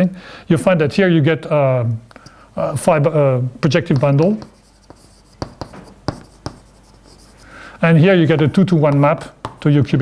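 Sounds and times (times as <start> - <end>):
chalk scratching on blackboard: 3.6 - 9.6
chalk tapping on blackboard: 3.6 - 9.7.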